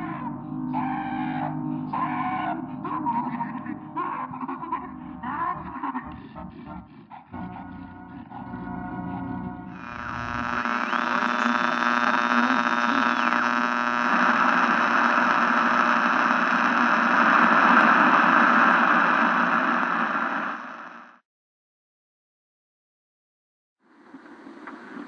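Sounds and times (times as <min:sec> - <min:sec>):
many-toned electronic hum: 0:07.4 - 0:21.2
static hiss: 0:09.8 - 0:21.2.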